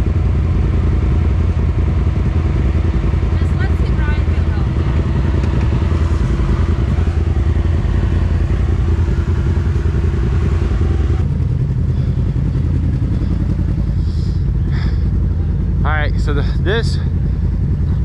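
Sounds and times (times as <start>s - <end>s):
another machine's engine: 0.0s - 18.0s
utility vehicle engine rumbling: 0.0s - 18.0s.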